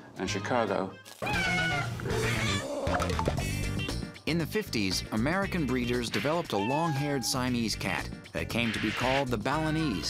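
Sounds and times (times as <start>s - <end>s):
cat meowing: 1.2s - 2.7s.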